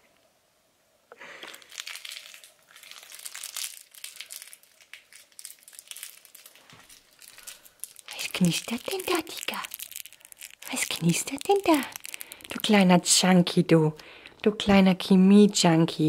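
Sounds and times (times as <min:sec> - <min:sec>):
plastic crackling: 0:01.3 - 0:16.0.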